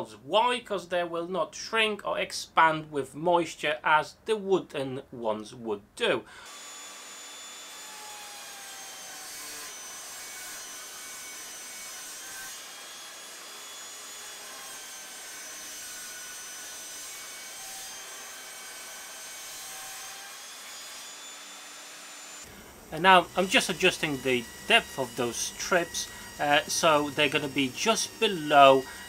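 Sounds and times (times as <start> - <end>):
table saw cutting plastic: 6.4 - 29.0.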